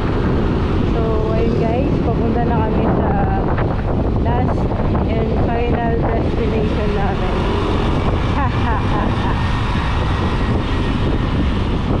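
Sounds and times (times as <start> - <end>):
motorcycle engine running: 0.0 - 12.0
wind on microphone: 0.0 - 12.0
person talking: 0.9 - 3.4, 4.2 - 7.5.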